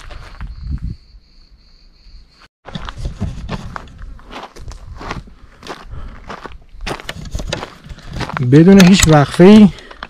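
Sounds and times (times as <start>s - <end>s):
footsteps on gravel: 0.0s - 0.6s, 2.6s - 10.0s.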